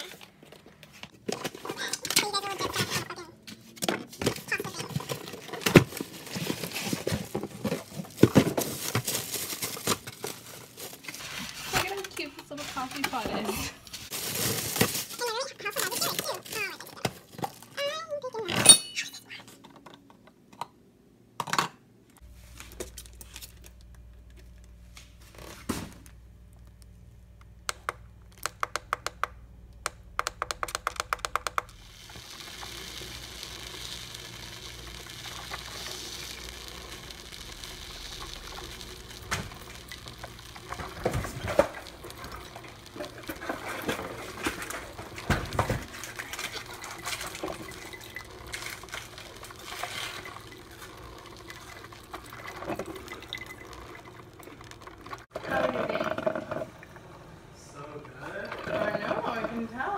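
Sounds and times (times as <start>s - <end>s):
coffee maker hissing and gurgling: 4.2s - 15.9s, 30.9s - 59.9s.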